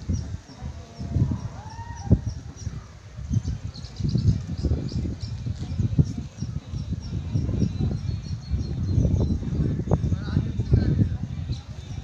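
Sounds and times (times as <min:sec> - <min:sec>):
wind rumbling on microphone: 0:00.0 - 0:12.0
small bird chirping: 0:00.1 - 0:09.5
rising-and-falling bird calls: 0:01.0 - 0:05.0.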